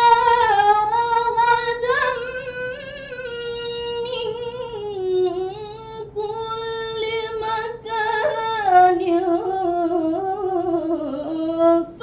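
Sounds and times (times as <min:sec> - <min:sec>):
girl reciting in melodic chant: 0:00.0 - 0:12.0.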